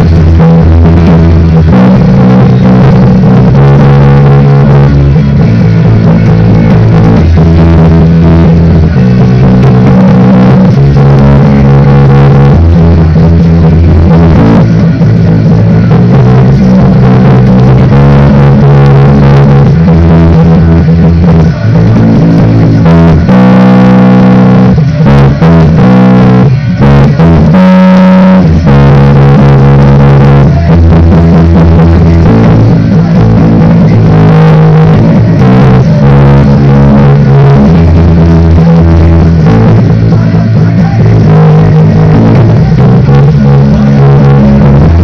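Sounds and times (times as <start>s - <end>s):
electric bass guitar bassline: 0.0s - 45.0s.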